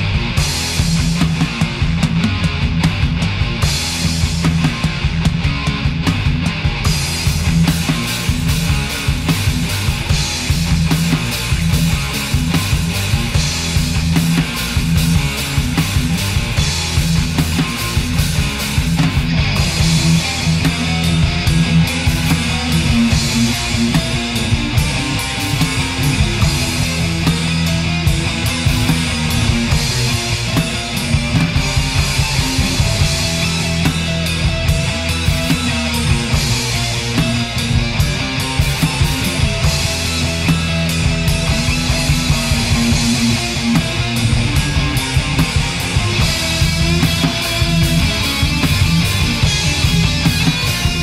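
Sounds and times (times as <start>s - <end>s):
bass guitar: 0.0s - 51.0s
distorted electric guitars: 0.0s - 51.0s
drums: 0.0s - 51.0s.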